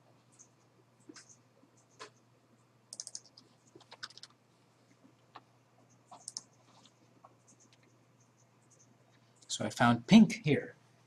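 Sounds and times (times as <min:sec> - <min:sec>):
typing on computer keyboard: 0:02.9 - 0:04.4, 0:06.1 - 0:06.8.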